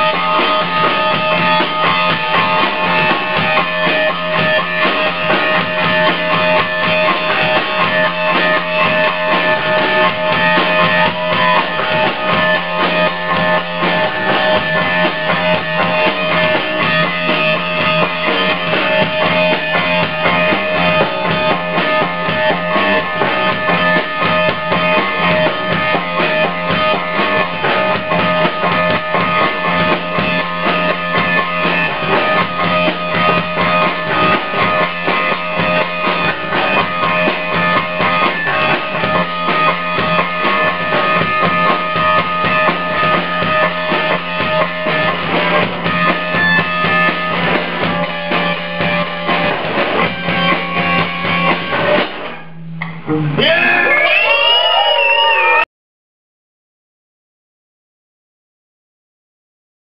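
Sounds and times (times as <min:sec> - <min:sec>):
drum kit: 0:00.0 - 0:55.6
electric guitar: 0:00.0 - 0:55.6.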